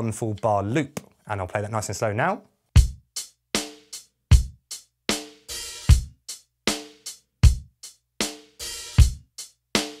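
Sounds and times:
electronic drum beat: 2.8 - 10.0.

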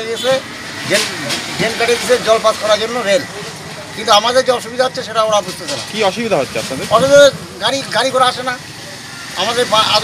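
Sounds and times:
man speaking: 0.0 - 8.7
road traffic noise: 0.0 - 10.0.

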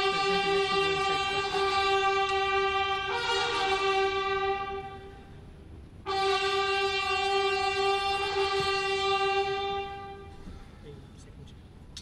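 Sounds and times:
brass fanfare held notes: 0.0 - 5.4, 6.0 - 10.5.

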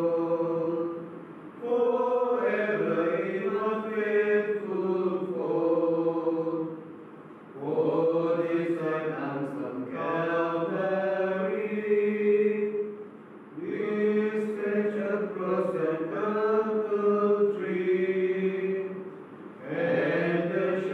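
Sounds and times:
men singing a chant-like hymn: 0.0 - 6.8, 7.6 - 12.9, 13.6 - 19.0, 19.6 - 20.9.

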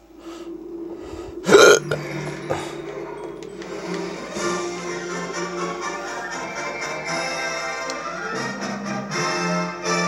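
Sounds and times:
film soundtrack music from television: 0.0 - 10.0
loud burp: 1.4 - 2.7.

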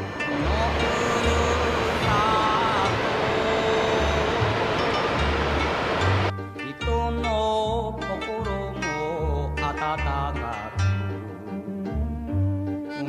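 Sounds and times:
waterfall rushing: 0.0 - 6.3
background music: 0.0 - 13.0.

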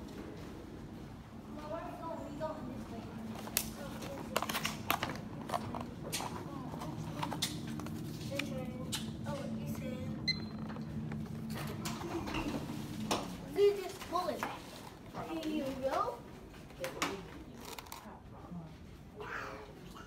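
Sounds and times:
low hum: 5.3 - 13.6.

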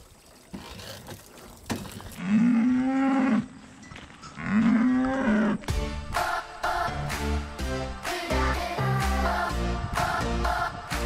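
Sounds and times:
cow mooing: 2.2 - 3.6, 4.4 - 5.7
music: 5.6 - 11.0.

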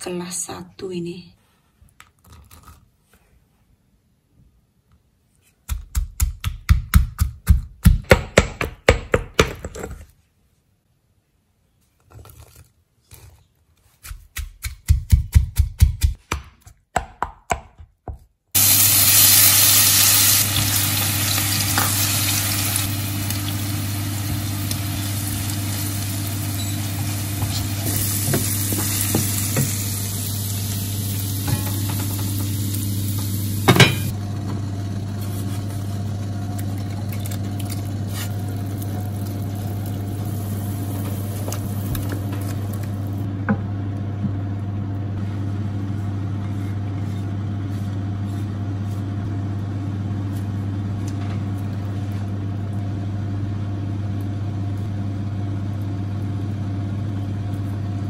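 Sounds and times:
paste sizzling in oil: 18.6 - 34.1, 37.9 - 43.2.

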